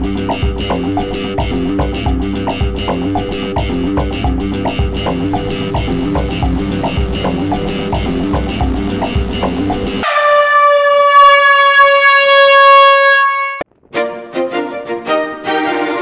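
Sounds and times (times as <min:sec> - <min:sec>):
rock music with steady beat: 0:00.6 - 0:10.0
loud air horn blast: 0:10.0 - 0:13.6.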